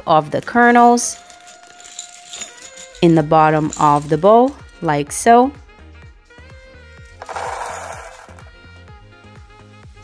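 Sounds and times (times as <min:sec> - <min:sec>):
popcorn kernels poured into bowl: 0:07.2 - 0:08.5.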